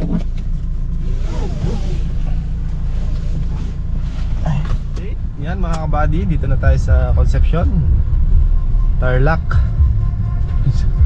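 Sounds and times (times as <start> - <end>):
car engine drone in cabin: 0.0 - 11.0
road noise hiss: 0.2 - 10.6.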